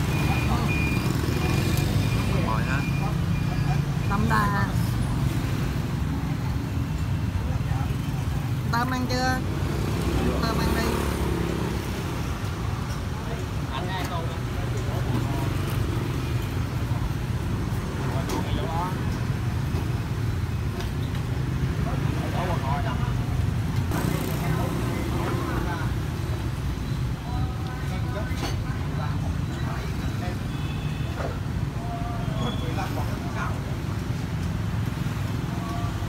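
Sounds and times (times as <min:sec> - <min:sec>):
background talk: 0:00.0 - 0:19.9, 0:21.6 - 0:36.0
motorbike and street traffic: 0:00.0 - 0:36.0.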